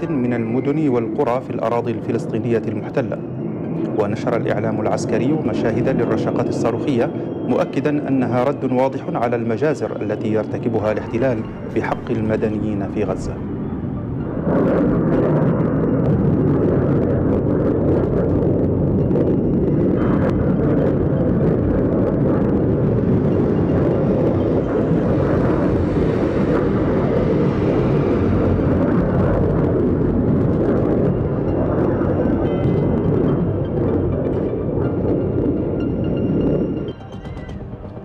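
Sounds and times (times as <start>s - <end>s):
rocket motors roaring: 9.4s - 38.0s.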